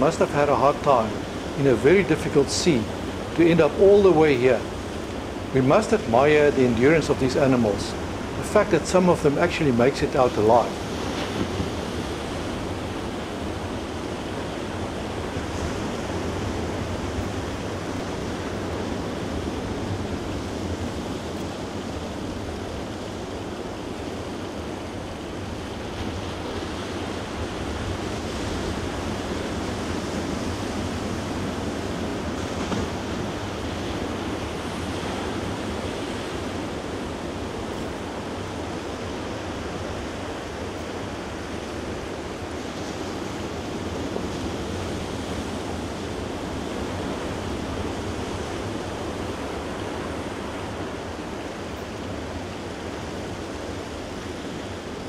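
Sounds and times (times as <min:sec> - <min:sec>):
ocean surf on sandy beach: 0:00.0 - 0:55.0.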